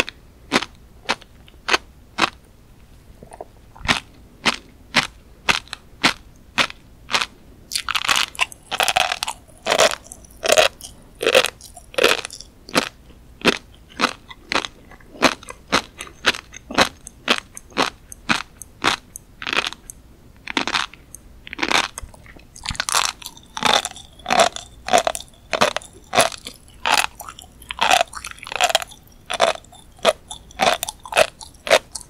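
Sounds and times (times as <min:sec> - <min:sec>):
chewing with crisp popping clicks: 0:06.6 - 0:32.0.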